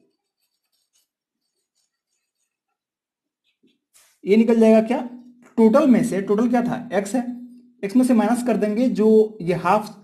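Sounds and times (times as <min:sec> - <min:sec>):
marker scratching on paper: 0:00.0 - 0:02.8.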